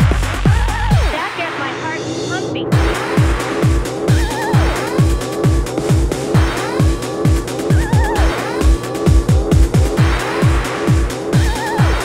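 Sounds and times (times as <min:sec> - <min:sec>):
deep kick drum: 0:00.0 - 0:01.2, 0:02.7 - 0:12.0.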